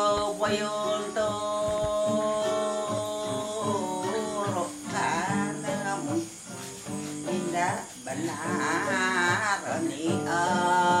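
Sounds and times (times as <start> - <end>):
acoustic guitar: 0.0 - 11.0
elderly woman singing: 0.0 - 11.0.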